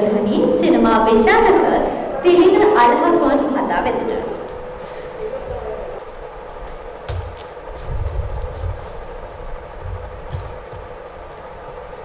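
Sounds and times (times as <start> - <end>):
microphones being bumped and handled: 6.5 - 11.2.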